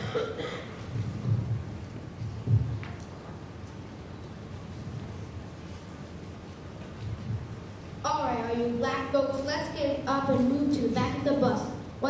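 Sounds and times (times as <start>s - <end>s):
thuds on hollow wooden stage: 0.8s - 3.0s.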